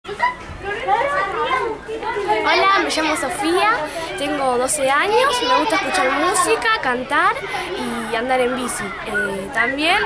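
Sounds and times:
children talking and calling out: 0:00.1 - 0:10.0.

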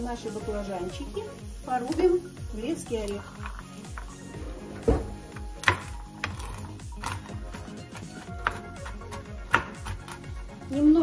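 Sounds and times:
background music: 0:00.0 - 0:11.0
knife chopping on cutting board: 0:04.9 - 0:10.2.

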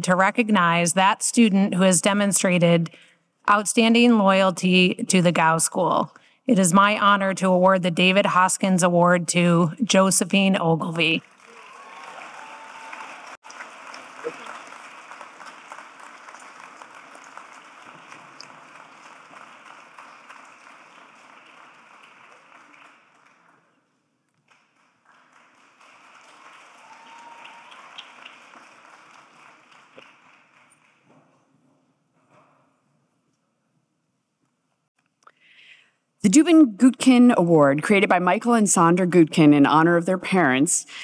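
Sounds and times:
audience applauding: 0:11.2 - 0:23.8, 0:24.4 - 0:31.1.

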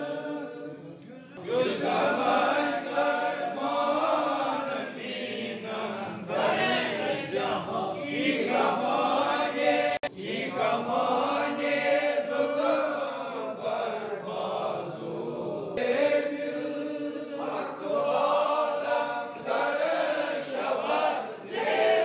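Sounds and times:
men chanting together: 0:00.0 - 0:22.0.

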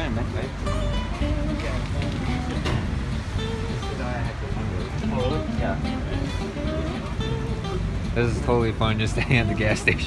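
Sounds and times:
guitar music: 0:00.0 - 0:10.0
road traffic rumble: 0:00.0 - 0:10.0.

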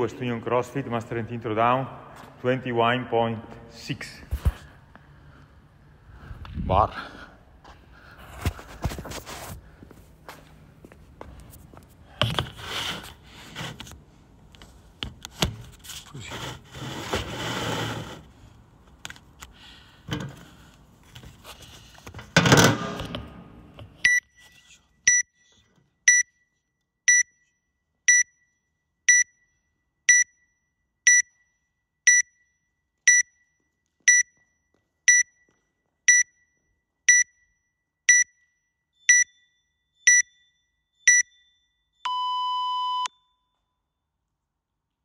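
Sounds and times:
soft footsteps on rubber floor: 0:07.6 - 0:12.0
electronic timer beeping: 0:24.0 - 0:24.4, 0:25.1 - 0:25.5, 0:26.1 - 0:26.5, 0:27.1 - 0:27.5, 0:28.1 - 0:28.5, 0:29.1 - 0:29.5, 0:30.1 - 0:30.5, 0:31.1 - 0:31.5, 0:32.1 - 0:32.5, 0:33.1 - 0:33.5, 0:34.1 - 0:34.4, 0:35.1 - 0:35.5, 0:36.1 - 0:36.5, 0:37.1 - 0:37.5, 0:38.1 - 0:43.4.

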